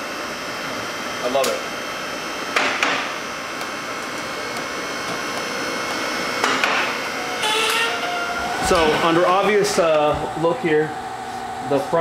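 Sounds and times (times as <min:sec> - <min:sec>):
mechanical whir with high hum: 0:00.0 - 0:12.0.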